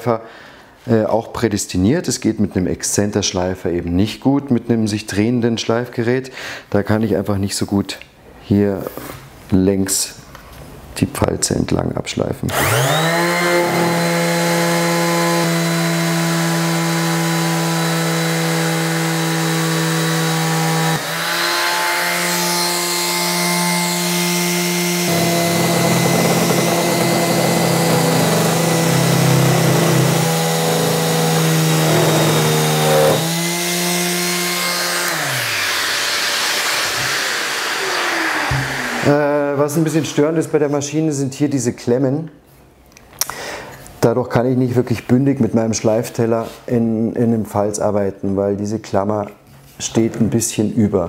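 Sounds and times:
sander vibrating: 0:12.5 - 0:39.5
orbital sander sanding wood: 0:12.5 - 0:40.2.

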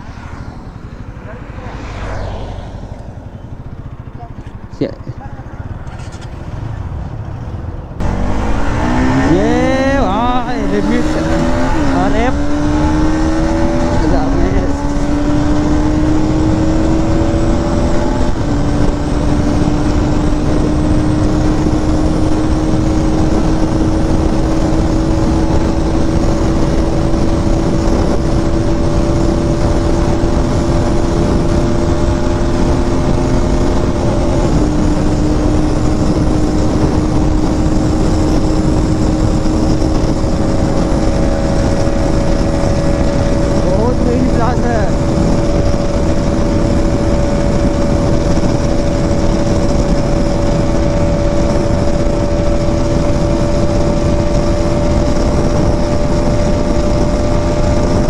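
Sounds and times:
motorcycle engine revving: 0:00.0 - 0:58.0
wind noise on microphone: 0:05.6 - 0:58.0.

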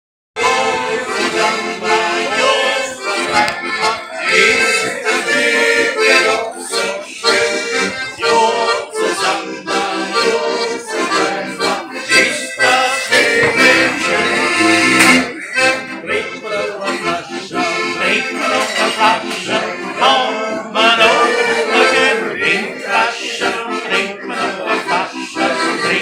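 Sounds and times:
accordion playing a tune: 0:00.4 - 0:26.0.

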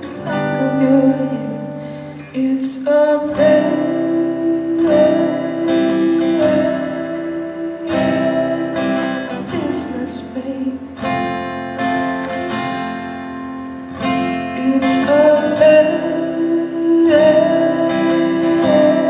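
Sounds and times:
woman singing: 0:00.0 - 0:11.3, 0:14.0 - 0:19.0
acoustic guitar strumming: 0:00.0 - 0:19.0.

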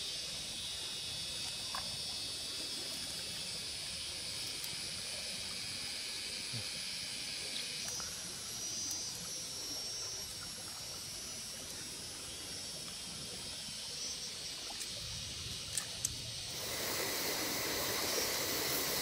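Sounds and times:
insects droning: 0:00.0 - 0:19.0.

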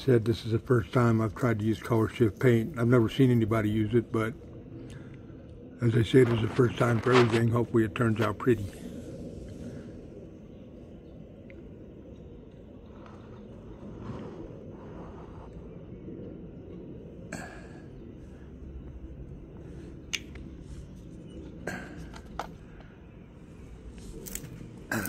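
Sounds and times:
low background rumble: 0:00.0 - 0:25.0
soft rustling handling noises: 0:05.9 - 0:08.9.

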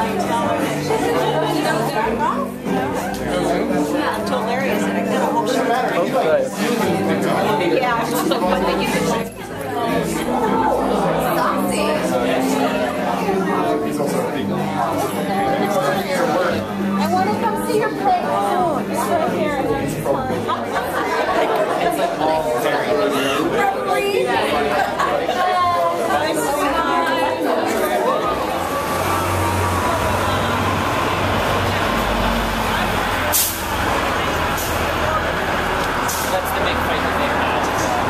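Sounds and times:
crowd talking at a party: 0:00.0 - 0:38.0
city street traffic rumble: 0:27.4 - 0:38.0.

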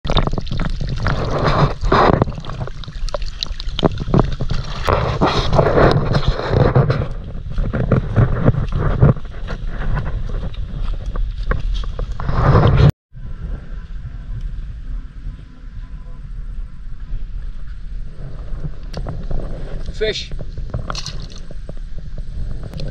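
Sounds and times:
outdoor ambience: 0:00.1 - 0:22.9
wind buffeting microphone: 0:00.1 - 0:22.9.

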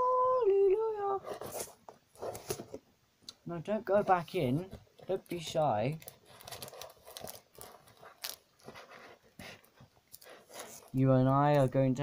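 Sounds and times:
packaging rustling: 0:04.1 - 0:11.7.

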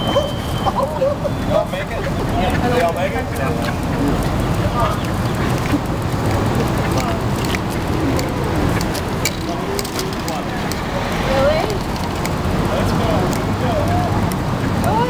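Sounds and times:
indistinct chatter: 0:00.0 - 0:15.0
steady traffic noise: 0:00.0 - 0:15.0.

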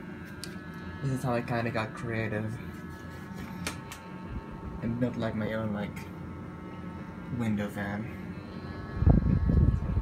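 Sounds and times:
clip fan humming: 0:00.0 - 0:10.0
air buffeting microphone: 0:08.9 - 0:10.0.

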